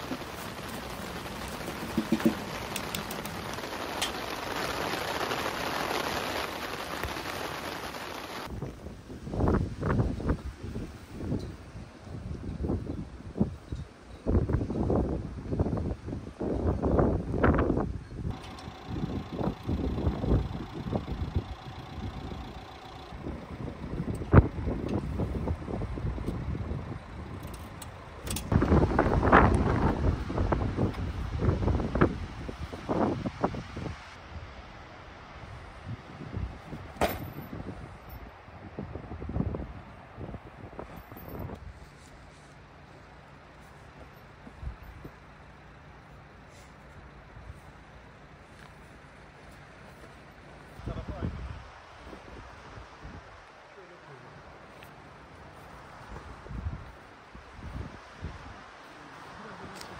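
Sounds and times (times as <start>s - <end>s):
gusty wind buffeting microphone: 0.0s - 42.0s, 49.9s - 53.5s, 54.5s - 58.8s
steady rain hiss: 0.0s - 59.9s.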